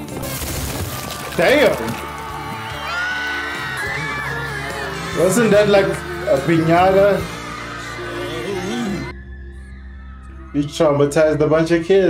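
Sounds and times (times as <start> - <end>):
background music: 0.0 - 12.0
children screaming: 1.0 - 10.4.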